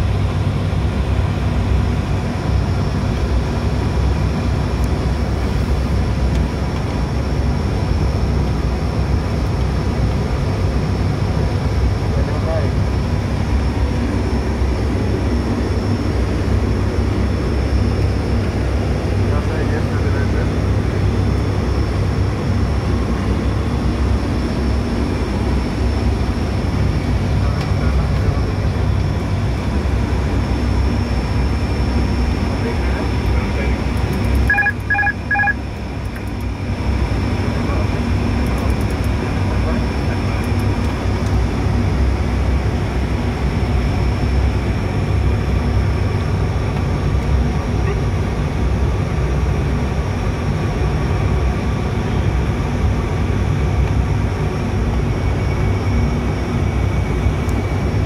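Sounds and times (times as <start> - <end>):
turboprop engine drone: 0.0 - 58.0
short electronic beeps: 34.5 - 35.6.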